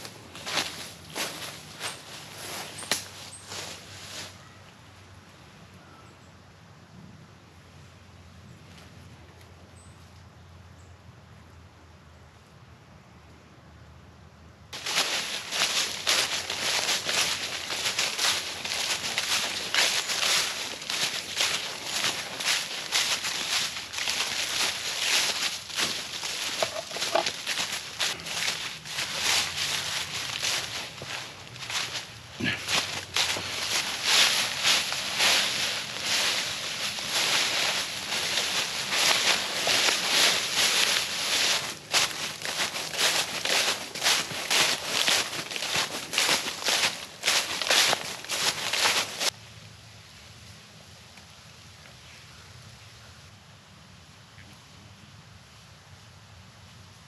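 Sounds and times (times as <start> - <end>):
footsteps crunching dry leaves: 0.0 - 4.5, 14.8 - 49.4.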